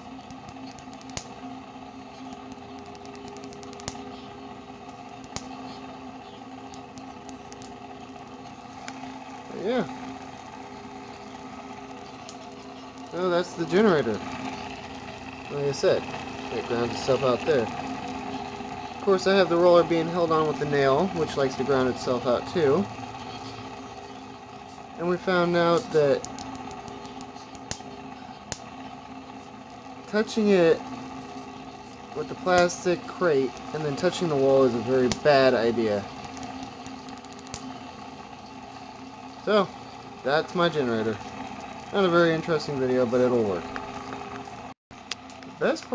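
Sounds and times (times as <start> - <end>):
electric spark snaps: 0.0 - 1.5, 2.2 - 5.8, 6.6 - 8.2, 25.7 - 28.7, 31.9 - 37.8
small fan motor humming: 0.0 - 45.9.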